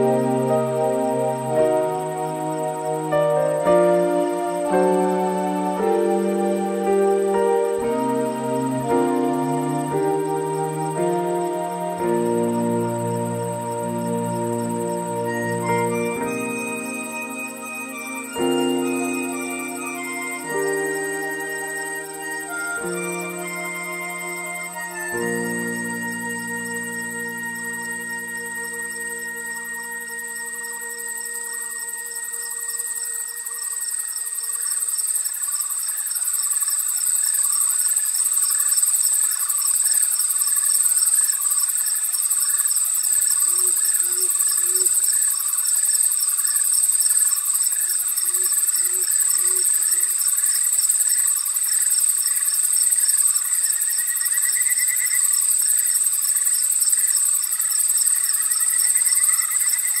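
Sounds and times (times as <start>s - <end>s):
music tones: 0.0s - 35.2s
crickets trilling: 0.0s - 60.0s
pulsing insect chirps: 0.0s - 60.0s.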